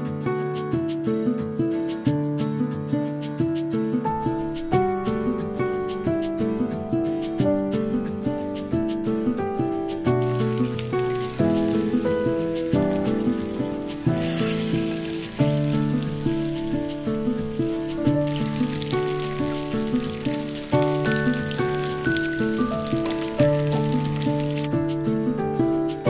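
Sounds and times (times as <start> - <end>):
background music: 0.0 - 26.0
fish sizzling in oil: 10.2 - 24.7.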